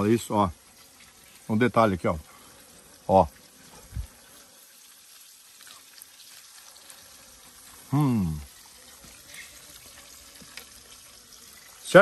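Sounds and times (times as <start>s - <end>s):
faint steady hiss: 0.0s - 12.0s.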